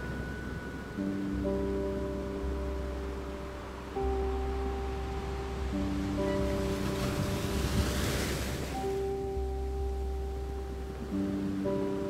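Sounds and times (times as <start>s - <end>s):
sea waves surging: 0.0s - 12.0s
slow instrumental music: 0.0s - 12.0s.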